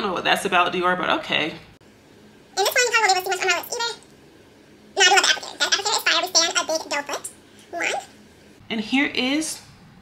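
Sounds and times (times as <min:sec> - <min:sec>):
high-pitched wordless voice: 0:02.6 - 0:04.1, 0:05.0 - 0:08.2.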